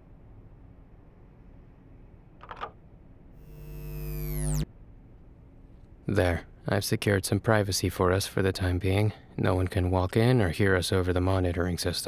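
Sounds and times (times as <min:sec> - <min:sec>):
buzzy electrical hum: 0:03.2 - 0:04.8.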